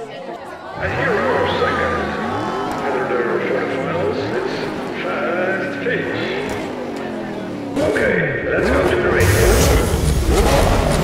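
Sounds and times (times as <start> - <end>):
race car engine revving: 0.6 - 11.0.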